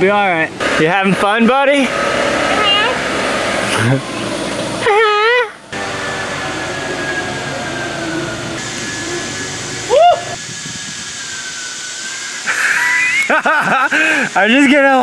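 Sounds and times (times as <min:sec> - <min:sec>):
rising whoop: 0:06.5 - 0:13.5
steady background hiss: 0:07.5 - 0:15.0
man laughing: 0:12.5 - 0:14.4.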